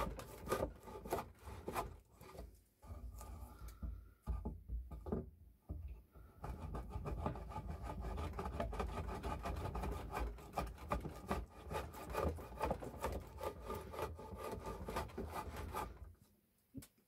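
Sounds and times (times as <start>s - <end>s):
hand plane scraping wood: 0.0s - 4.6s, 6.2s - 16.2s.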